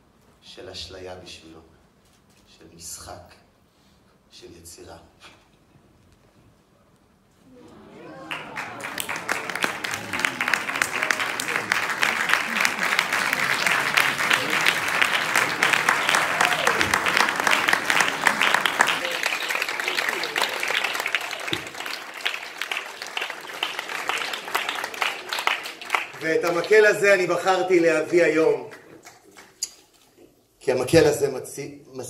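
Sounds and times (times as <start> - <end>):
audience applauding: 7.5 - 27.4.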